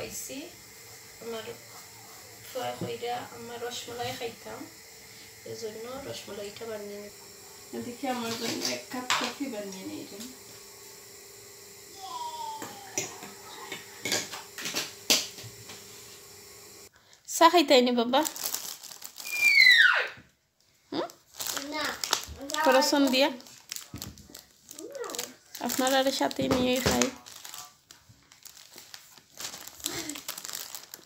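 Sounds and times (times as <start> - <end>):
plastic bag crinkling: 18.0 - 19.7, 20.9 - 31.0.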